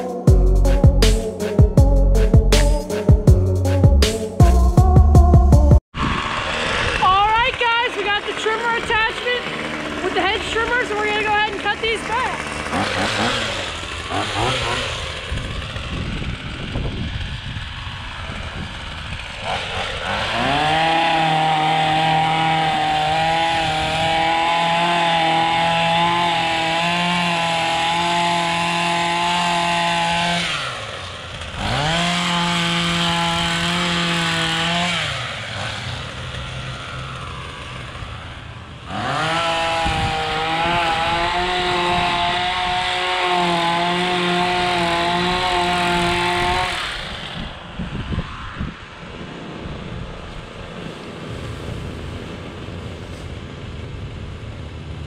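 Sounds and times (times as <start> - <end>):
hedge trimmer idling and revving: 6.0 - 50.4.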